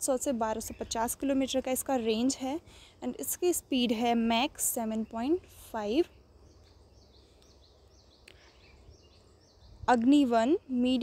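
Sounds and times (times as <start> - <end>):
small bird chirping: 3.1 - 11.0.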